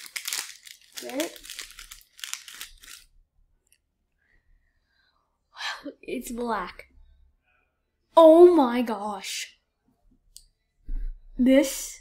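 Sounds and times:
foil packet crinkling and tearing: 0.0 - 3.1.

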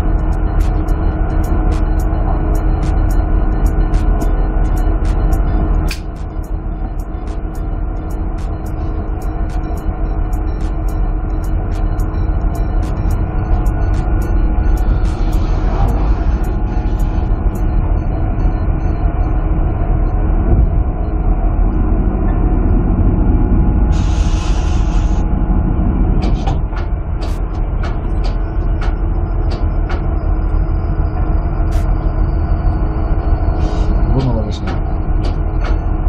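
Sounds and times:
deck machinery droning: 0.0 - 36.0
knocks and clicks: 26.2 - 30.2, 34.2 - 35.9.

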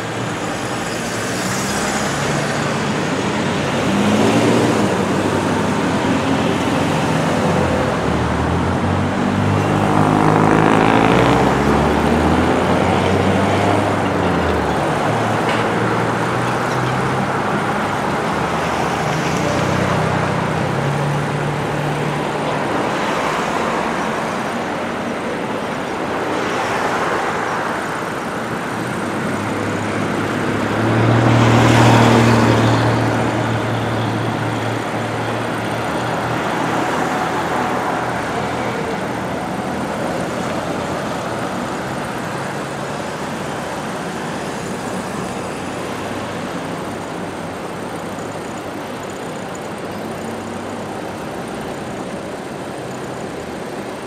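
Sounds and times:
cars driving past: 0.0 - 54.0.

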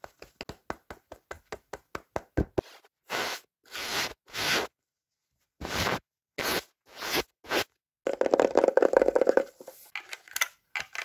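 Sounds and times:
scratchy ear-cleaning rubbing: 2.6 - 4.7, 5.6 - 7.7.

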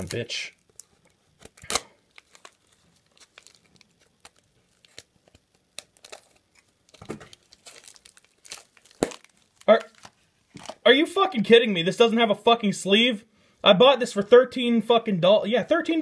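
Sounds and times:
tape and plastic crinkling: 0.0 - 10.8.

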